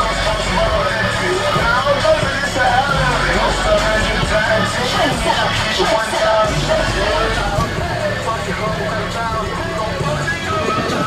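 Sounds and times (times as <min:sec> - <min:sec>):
car engine exhaust rumble: 0:00.0 - 0:11.0.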